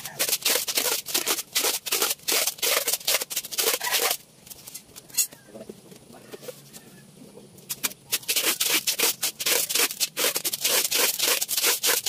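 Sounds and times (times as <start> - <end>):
rubbing on metal tube: 0.0 - 4.2, 7.7 - 12.0.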